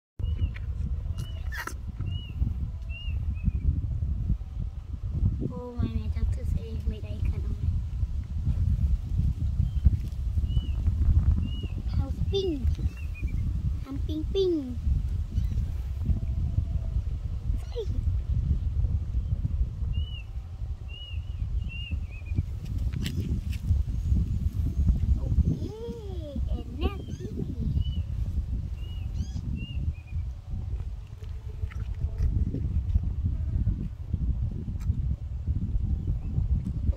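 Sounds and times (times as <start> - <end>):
wind rumble on microphone: 0.2 - 36.9
small animal squeaky calls: 1.2 - 1.8, 26.8 - 27.5.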